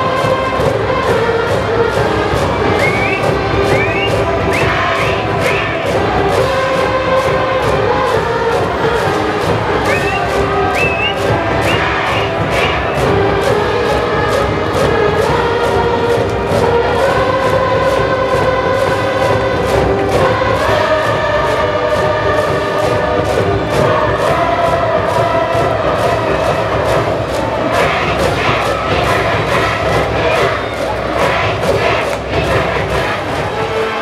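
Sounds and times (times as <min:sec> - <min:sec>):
brass band playing: 0:00.0 - 0:34.0
steady drum beat: 0:00.0 - 0:34.0
students singing and chanting: 0:00.0 - 0:34.0.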